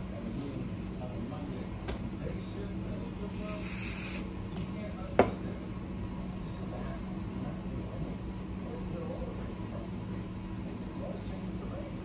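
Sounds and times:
aerosol spray hiss: 0:03.3 - 0:04.3.

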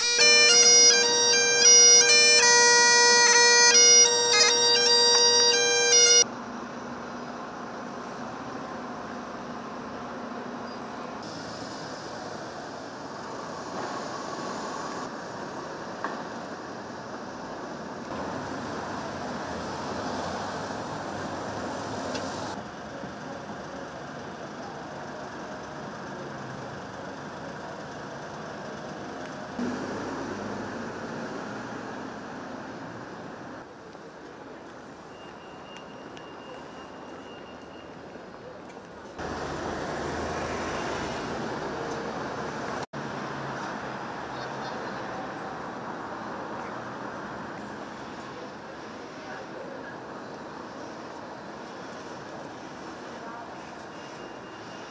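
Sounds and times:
road traffic passing: 0:00.0 - 0:54.9
people talking: 0:22.1 - 0:29.8, 0:44.3 - 0:46.8, 0:52.2 - 0:54.1.

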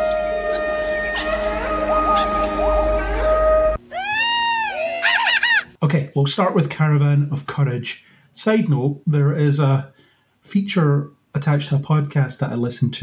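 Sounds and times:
long held horn note: 0:00.0 - 0:03.8
creature chatter: 0:04.0 - 0:05.7.

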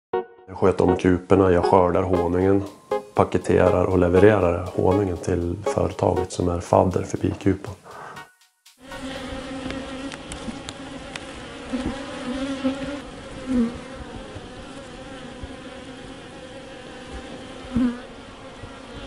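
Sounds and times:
bees buzzing: 0:01.3 - 0:19.0.

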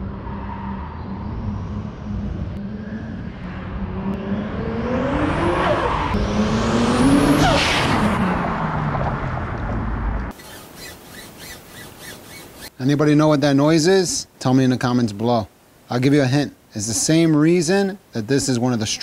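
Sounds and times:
car accelerating past: 0:00.0 - 0:10.3.

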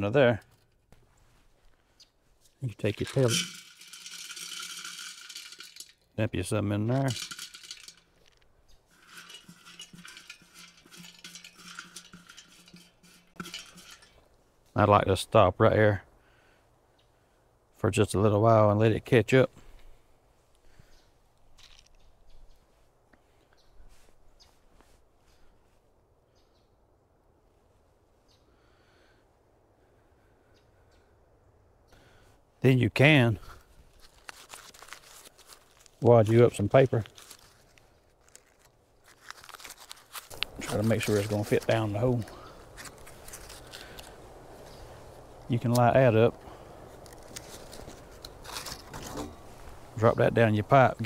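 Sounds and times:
pellets rattling into metal funnel: 0:02.7 - 0:06.1, 0:06.8 - 0:08.2, 0:08.9 - 0:14.2, 0:34.2 - 0:38.6, 0:39.2 - 0:44.1
soft rustles and clicks: 0:33.6 - 0:45.8, 0:46.9 - 0:50.0.

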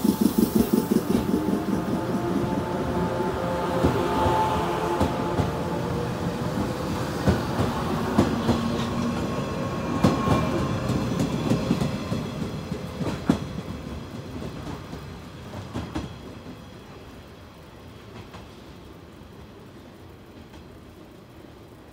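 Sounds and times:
train wheels clacking on rail joints: 0:00.0 - 0:16.8.

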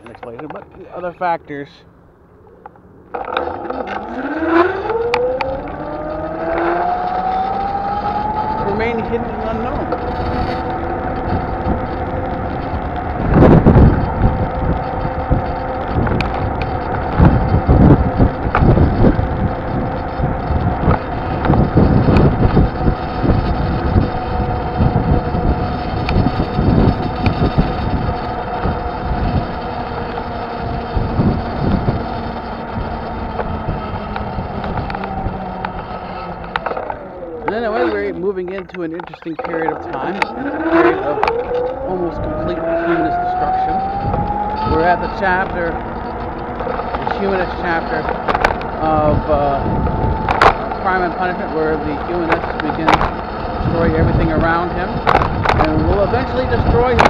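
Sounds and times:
wind buffeting microphone: 0:00.0 - 0:57.0
vehicle motor whine: 0:01.8 - 0:57.0.

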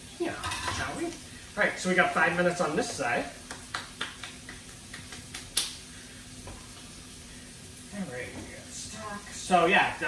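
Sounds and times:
meat sizzling in a pan: 0:00.0 - 0:10.0.

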